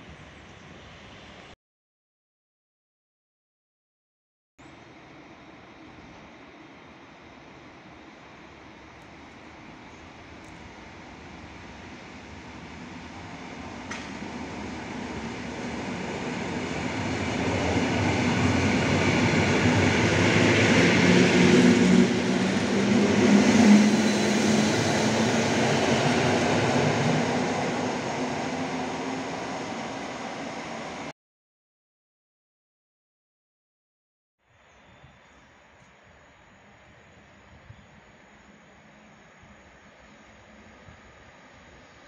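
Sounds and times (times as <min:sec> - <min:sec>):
electric train passing: 0:04.8 - 0:31.1, 0:36.5 - 0:42.0.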